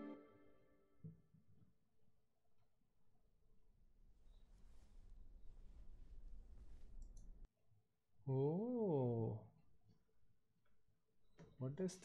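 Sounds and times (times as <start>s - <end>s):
faint clicks: 7.0s - 7.4s.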